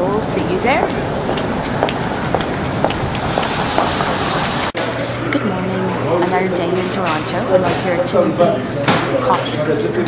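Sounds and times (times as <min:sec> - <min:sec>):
footsteps: 0:00.6 - 0:04.8
traffic on a wet road: 0:01.9 - 0:04.8.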